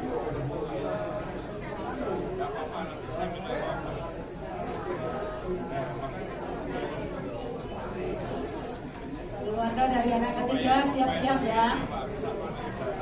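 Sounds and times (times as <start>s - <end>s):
crowd chatter: 0.0s - 13.0s.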